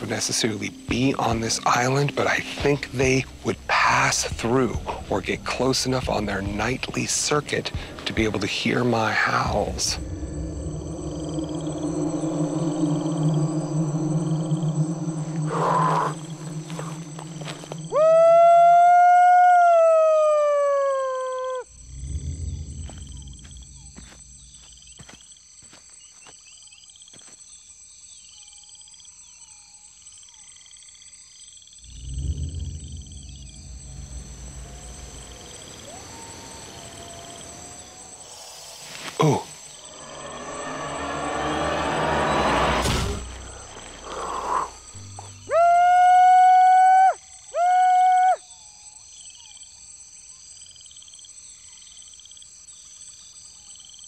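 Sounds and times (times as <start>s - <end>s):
frogs chirping: 0.0s - 46.4s, 47.1s - 54.0s
insects buzzing: 0.0s - 54.0s
whooshing swell: 7.9s - 18.0s, 21.7s - 24.9s, 31.8s - 45.5s
loud high-pitched tones: 8.5s - 18.1s, 31.9s - 45.6s.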